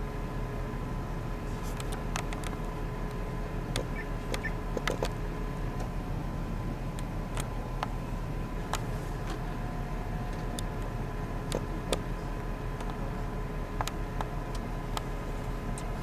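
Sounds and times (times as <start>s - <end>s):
steady low hum: 0.0s - 16.0s
small handling clicks: 1.6s - 2.7s.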